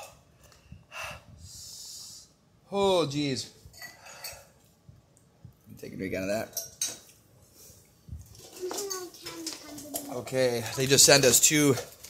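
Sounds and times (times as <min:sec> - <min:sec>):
man breathing heavily: 0:00.0 - 0:02.4.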